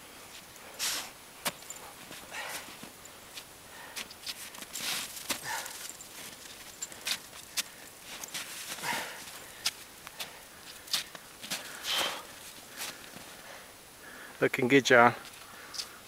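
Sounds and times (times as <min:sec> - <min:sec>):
boots crunching in snow: 0:00.8 - 0:11.7.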